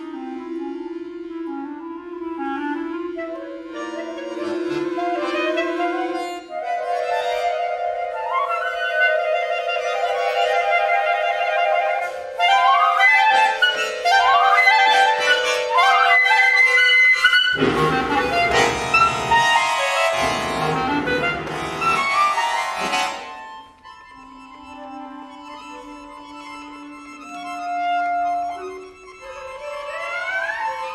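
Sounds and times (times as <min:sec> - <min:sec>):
woodwind and accordion chamber music: 0:00.0 - 0:30.9.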